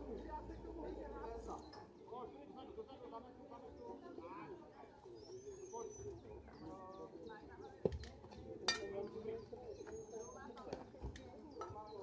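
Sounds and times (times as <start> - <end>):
distant indistinct voices: 0.0 - 12.0
birds chirping: 3.4 - 12.0.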